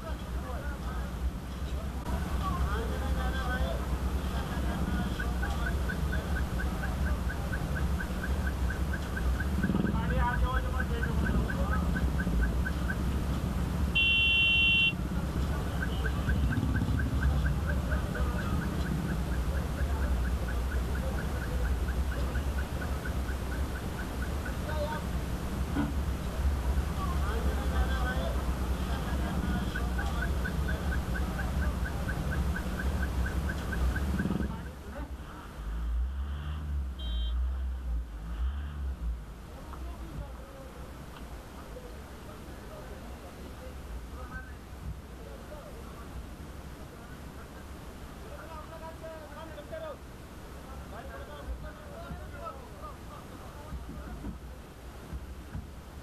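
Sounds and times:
low vehicle engine rumble: 0.0s - 56.0s.

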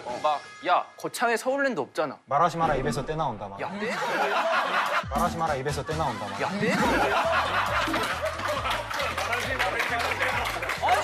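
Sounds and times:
background music with low bass: 2.6s - 11.0s
men laughing: 3.6s - 5.2s, 5.8s - 11.0s
hand claps: 7.7s - 11.0s.

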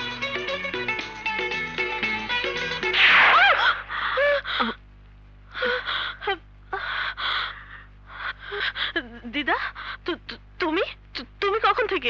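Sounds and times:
woman sobbing: 3.3s - 4.8s, 5.5s - 10.2s
woman gasping: 3.6s - 4.8s.

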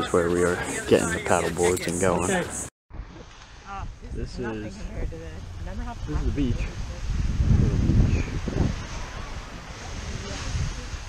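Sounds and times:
gentle surf: 0.0s - 11.0s
wind buffeting microphone: 3.8s - 11.0s.

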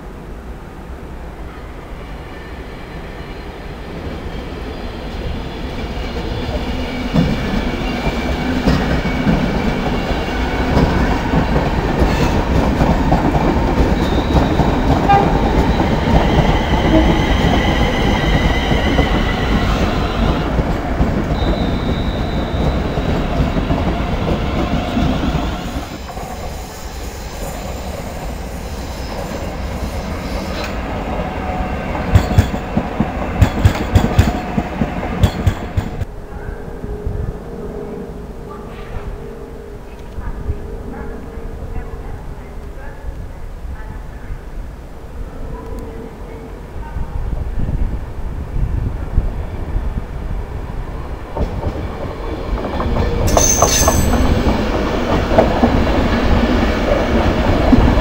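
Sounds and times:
train rolling rumble: 0.2s - 58.0s
high steady squealing tones: 21.3s - 30.8s
train wheels clacking over joints: 51.3s - 58.0s.

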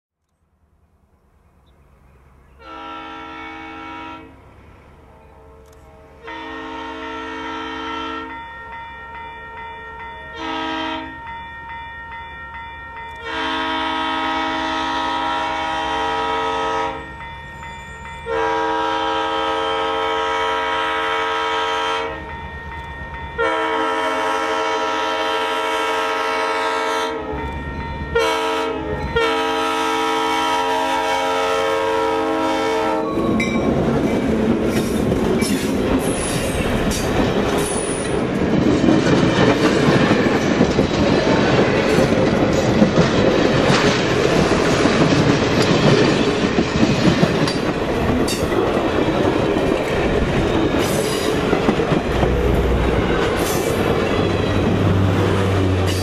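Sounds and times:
locomotive air horn blasts: 2.6s - 4.4s, 5.1s - 8.4s, 10.3s - 11.2s, 13.2s - 17.1s, 18.3s - 22.3s, 23.4s - 27.4s, 28.1s - 33.4s.

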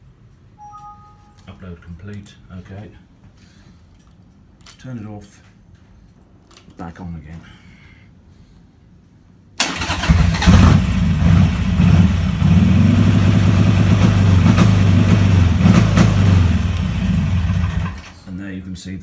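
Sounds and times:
motorcycle engine starting and revving: 9.6s - 18.2s.

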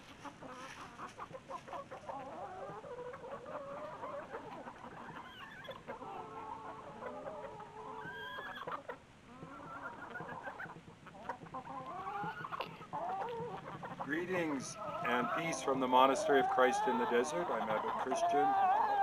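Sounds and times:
hens clucking: 0.0s - 19.0s.

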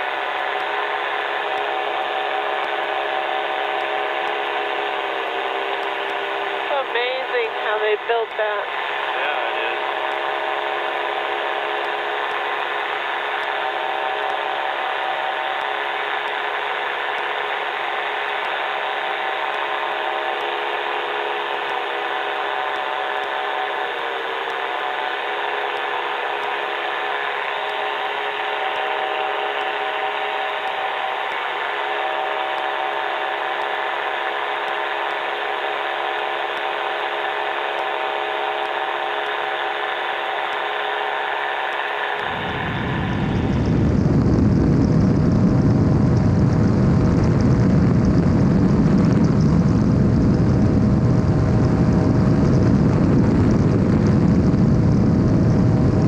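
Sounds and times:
ultralight engine and propeller drone: 0.0s - 56.0s.

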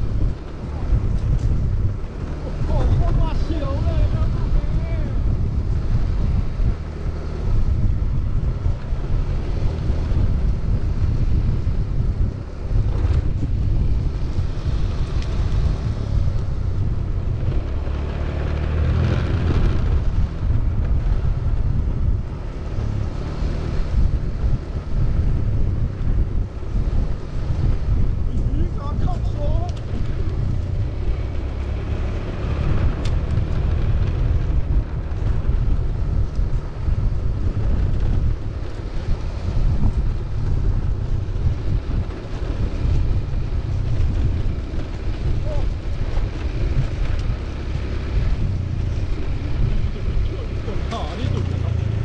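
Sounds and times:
skate wheels rolling on concrete: 0.0s - 52.0s
wind noise on microphone: 0.0s - 52.0s.

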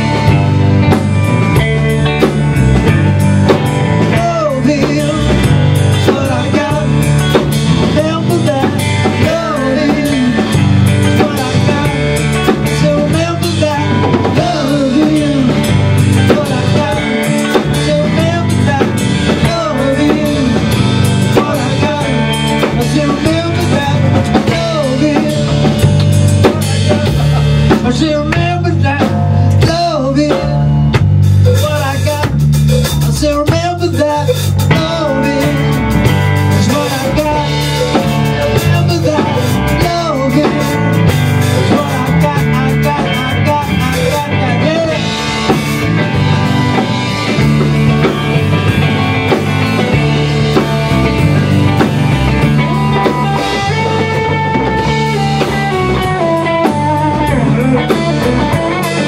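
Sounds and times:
live rock band playing: 0.0s - 59.0s
electric guitar gliding in pitch: 34.7s - 59.0s.

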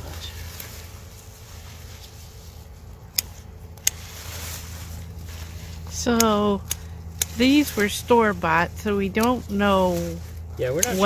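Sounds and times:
low steady rumble: 0.0s - 11.0s
vines snapping: 2.9s - 11.0s.

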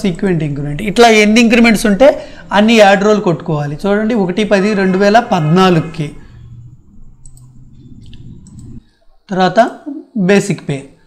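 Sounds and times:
low steady hum: 0.0s - 9.3s
person speaking: 0.0s - 11.0s
computer mouse clicks: 7.2s - 8.8s.

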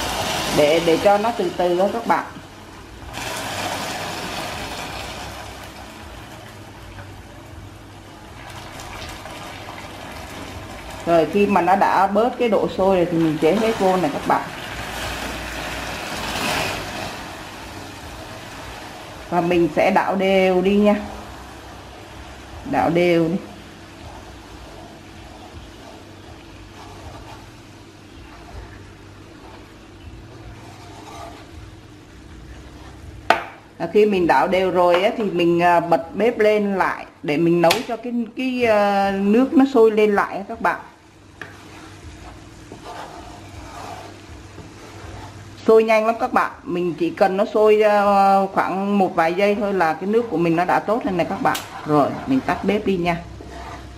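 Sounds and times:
caramel hissing and boiling: 0.0s - 53.9s
steady low hum: 0.0s - 53.9s
liquid bubbling: 2.4s - 22.7s, 23.5s - 33.3s, 41.0s - 45.9s, 49.0s - 53.9s
liquid pouring: 3.0s - 6.8s, 8.2s - 11.1s
chopsticks scraping a metal wok: 30.4s - 31.5s, 41.4s - 45.8s, 50.1s - 53.9s.

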